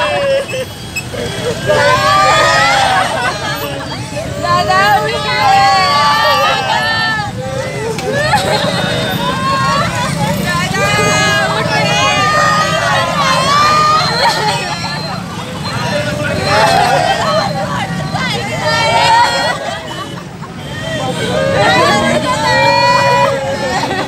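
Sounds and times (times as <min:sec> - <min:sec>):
people wailing and crying out: 0:00.0 - 0:24.0.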